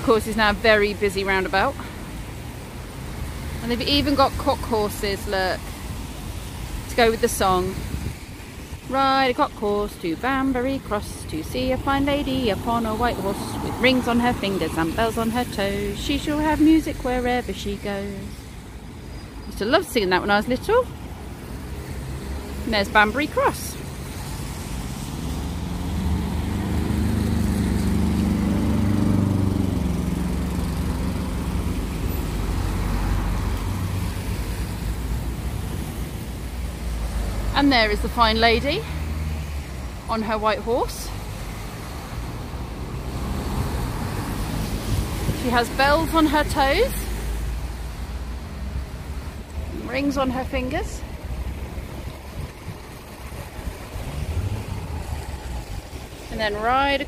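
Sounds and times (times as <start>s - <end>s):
car engines rumbling: 0.0s - 57.0s
wind buffeting microphone: 7.1s - 8.8s
vehicle passing close: 21.4s - 39.9s, 49.7s - 57.0s.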